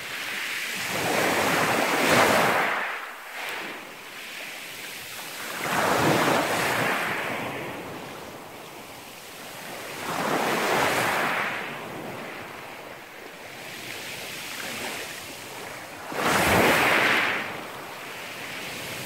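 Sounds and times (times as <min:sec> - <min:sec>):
waves washing over pebble shore: 0:00.1 - 0:07.6, 0:13.7 - 0:19.0.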